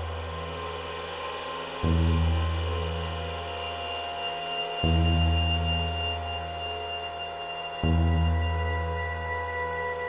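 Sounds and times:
ambient electronic music: 0:00.0 - 0:10.0
sustained synth pad: 0:00.0 - 0:10.0.

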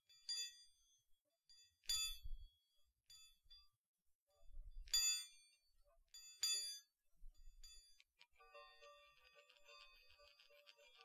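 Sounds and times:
jangle of chime tones: 0:00.1 - 0:03.8, 0:04.8 - 0:10.3.

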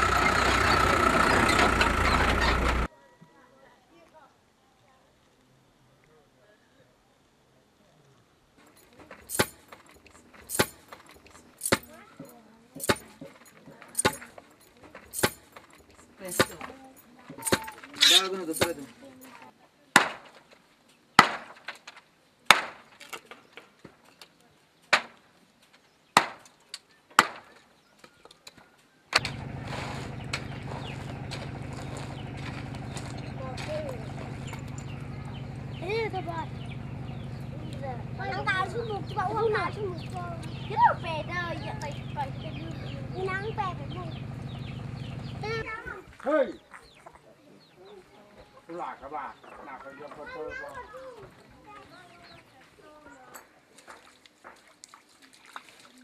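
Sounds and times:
wood chopping strokes: 0:09.0 - 0:15.7, 0:20.0 - 0:20.6, 0:21.2 - 0:24.0, 0:24.9 - 0:27.7, 0:28.5 - 0:33.0
steady low hum: 0:29.2 - 0:45.6.

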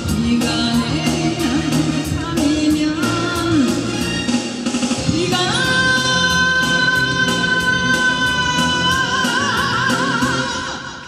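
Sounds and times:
woman singing into a microphone: 0:00.0 - 0:04.1, 0:05.0 - 0:11.0
pop backing track: 0:00.0 - 0:11.0.

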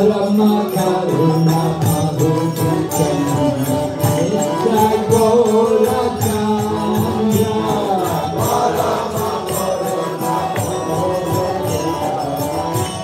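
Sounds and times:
small hand cymbals beat: 0:00.0 - 0:13.0
voices chanting together: 0:00.0 - 0:13.0.

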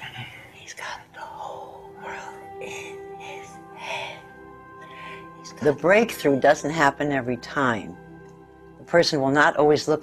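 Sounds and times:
woman whispering: 0:00.0 - 0:04.3.

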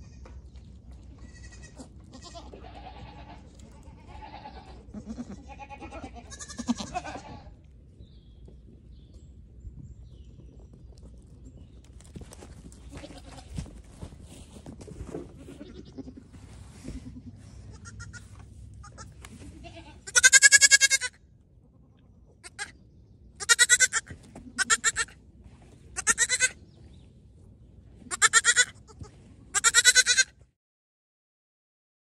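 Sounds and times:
faint background noise: 0:00.0 - 0:30.5
goats bleating: 0:01.1 - 0:07.6, 0:12.8 - 0:13.6, 0:15.4 - 0:21.2, 0:21.8 - 0:22.7, 0:23.4 - 0:25.2, 0:26.0 - 0:26.6, 0:28.1 - 0:30.3.

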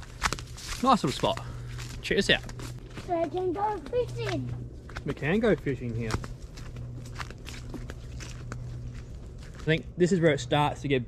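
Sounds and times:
footsteps on dirt and leaves: 0:00.0 - 0:10.2
steady low hum: 0:00.0 - 0:11.0.

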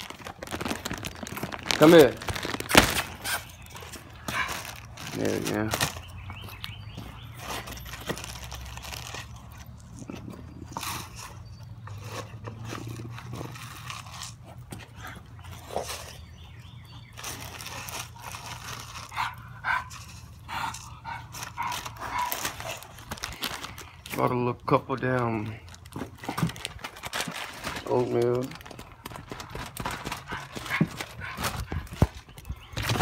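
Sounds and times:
rustles and clicks: 0:00.0 - 0:06.6, 0:25.6 - 0:33.0
dogs vocalising: 0:03.2 - 0:05.0, 0:17.7 - 0:23.2, 0:29.8 - 0:33.0.

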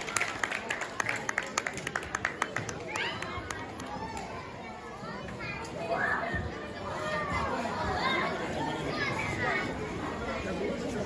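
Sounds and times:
children and adults chattering: 0:00.0 - 0:11.0.

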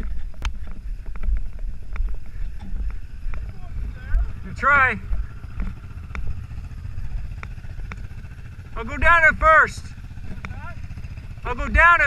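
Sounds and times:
quad engine idling: 0:00.0 - 0:12.0.

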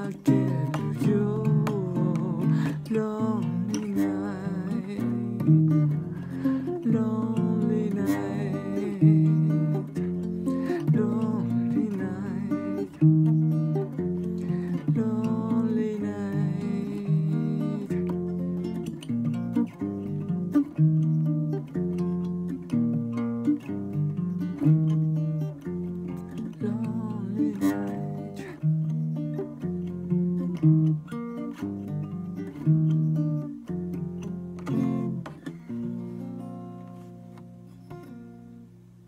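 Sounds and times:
acoustic guitar plucked chords: 0:00.0 - 0:39.0.

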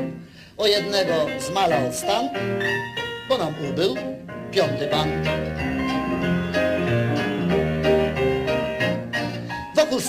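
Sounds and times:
band playing instrumental: 0:01.1 - 0:10.0
low bass line: 0:04.5 - 0:09.1.

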